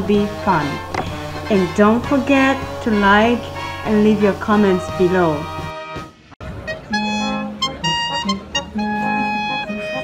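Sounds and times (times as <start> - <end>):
brass band playing held chords: 0.2 - 10.0.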